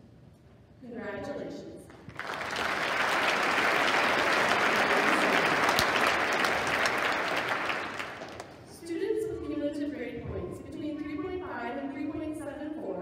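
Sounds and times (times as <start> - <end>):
audience applause: 2.1 - 8.6.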